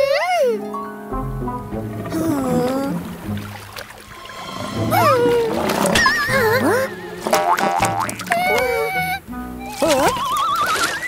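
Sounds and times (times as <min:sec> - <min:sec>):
background music: 0:00.0 - 0:11.0
long wavering rising tone: 0:01.1 - 0:09.3
springy boings: 0:01.1 - 0:09.6
sliding tones: 0:01.1 - 0:09.8.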